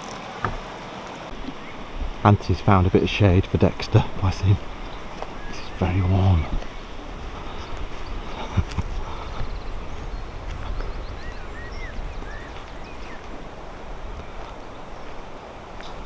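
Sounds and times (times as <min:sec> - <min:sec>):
wind rumble on microphone: 0:01.3 - 0:16.0
bird chirps: 0:01.4 - 0:01.9, 0:04.1 - 0:13.4.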